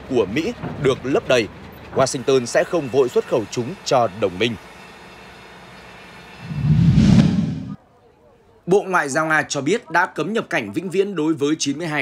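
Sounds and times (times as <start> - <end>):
low whooshing rumble: 6.4 - 7.8
faint background noise: 7.7 - 12.0.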